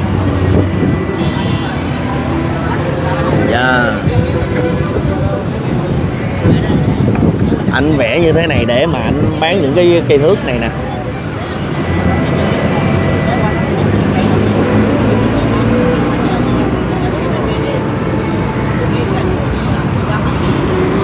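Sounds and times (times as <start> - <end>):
general traffic noise: 0.0 - 21.0
vehicle engine humming: 0.0 - 21.0.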